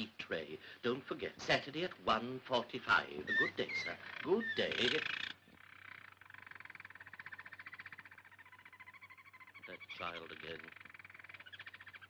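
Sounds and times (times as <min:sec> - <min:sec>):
canaries trilling: 0:02.0 - 0:12.0.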